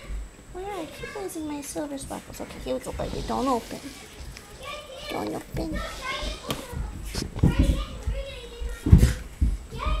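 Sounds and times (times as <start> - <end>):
children chattering: 0.0 - 10.0
low thuds: 5.5 - 10.0.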